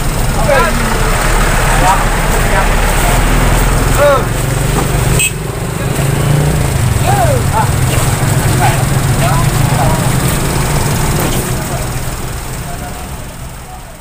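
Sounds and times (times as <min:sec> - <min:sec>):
engine idling: 0:00.0 - 0:14.0
people talking: 0:00.0 - 0:14.0.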